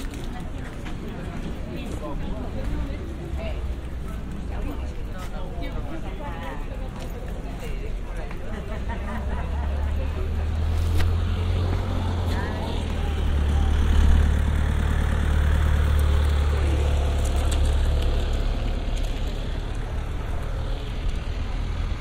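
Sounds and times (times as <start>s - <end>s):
faint voices: 0.0s - 22.0s
motor vehicle rumbling: 0.0s - 22.0s.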